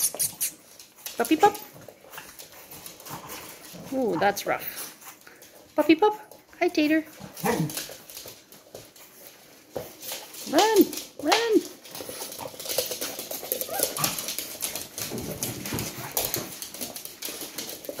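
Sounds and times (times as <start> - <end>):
dog claws skittering on floor: 0.0 - 18.0
dogs scuffling: 0.0 - 18.0.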